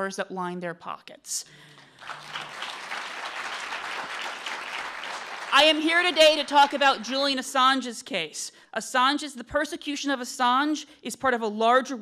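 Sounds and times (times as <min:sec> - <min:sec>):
audience applauding: 0:01.6 - 0:07.2.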